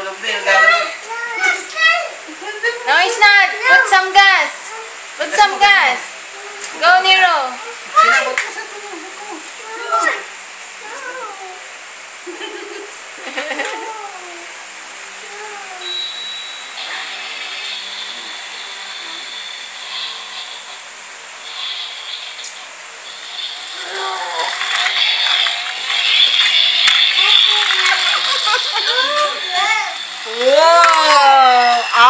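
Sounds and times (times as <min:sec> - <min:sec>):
toy car whirring: 0:16.8 - 0:20.8, 0:21.4 - 0:32.0.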